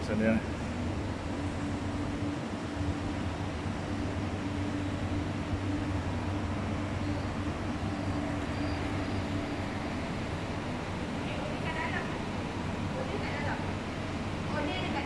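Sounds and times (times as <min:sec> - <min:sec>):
air-conditioning hum: 0:00.0 - 0:15.0.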